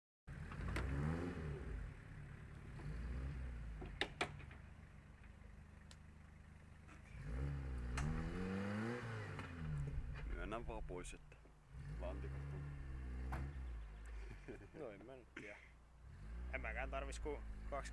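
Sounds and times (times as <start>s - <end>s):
off-road vehicle engine revving: 0.3s - 4.5s, 6.5s - 17.9s.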